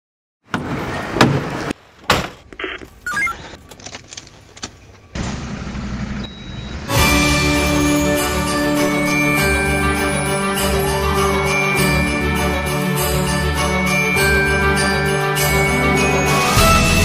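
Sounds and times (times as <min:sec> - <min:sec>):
short electronic beeps: 0:02.6 - 0:03.4, 0:06.2 - 0:06.8
music: 0:06.9 - 0:17.0.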